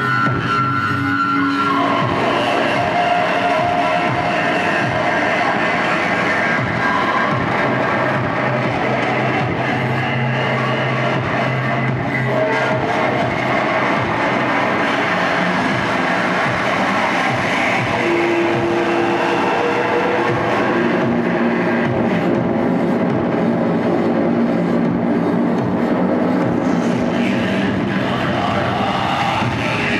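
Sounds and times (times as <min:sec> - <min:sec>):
distorted electronic noise: 0:00.0 - 0:29.9
held droning pitches: 0:00.0 - 0:29.9.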